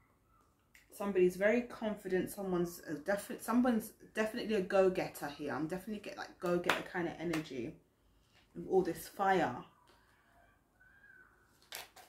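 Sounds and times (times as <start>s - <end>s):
card deck being shuffled: 11.6s - 12.0s.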